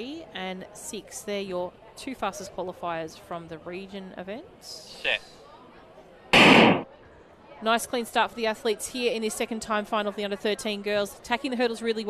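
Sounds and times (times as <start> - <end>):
starting gun firing: 6.4 - 6.9.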